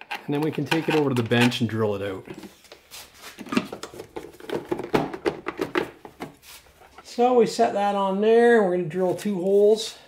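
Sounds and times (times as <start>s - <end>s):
plastic cover clicking and knocking: 0.0s - 1.6s, 3.4s - 6.4s.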